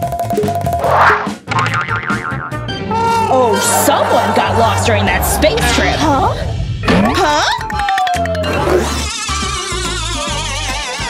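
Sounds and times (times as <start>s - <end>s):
upbeat music with bass line: 6.8s - 11.0s.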